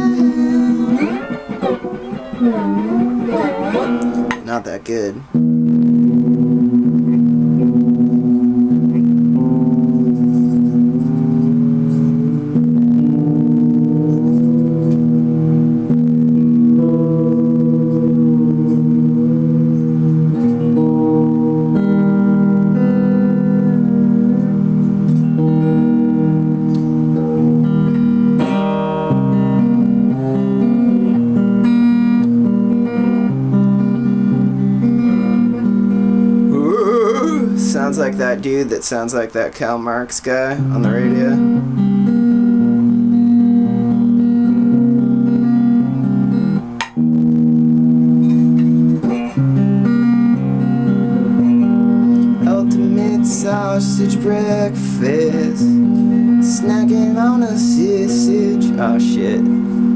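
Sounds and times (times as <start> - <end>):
low held notes: 0.0 - 28.4, 29.1 - 59.9
plucked guitar notes: 0.0 - 59.9.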